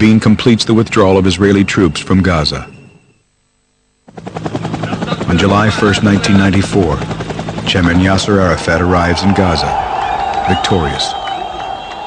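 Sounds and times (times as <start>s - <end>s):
loud rapid pulsing: 4.0s - 12.0s.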